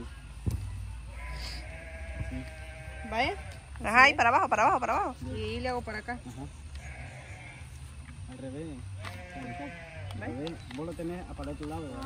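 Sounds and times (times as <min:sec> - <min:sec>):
animal bleating: 0:01.1 - 0:04.0, 0:06.7 - 0:07.8, 0:09.0 - 0:10.4.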